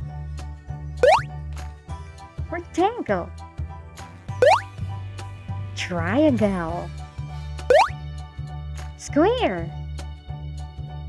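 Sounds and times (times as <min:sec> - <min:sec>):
cheerful children's music: 0:00.0 - 0:11.0
upward sweeping cartoon effect: 0:01.0 - 0:01.3, 0:04.4 - 0:04.6, 0:07.7 - 0:07.9.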